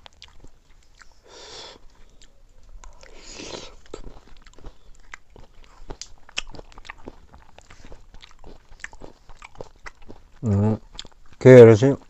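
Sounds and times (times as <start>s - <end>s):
wet lip smacks and chewing: 0.0s - 1.2s, 1.8s - 11.4s.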